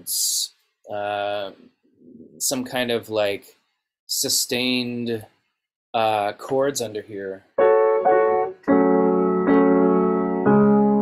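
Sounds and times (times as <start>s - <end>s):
keyboard chords: 7.6s - 11.0s.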